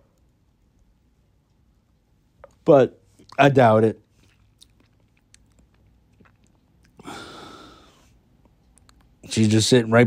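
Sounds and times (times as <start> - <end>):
breath into microphone: 7.0 - 8.2
mouth clicks: 8.4 - 9.2.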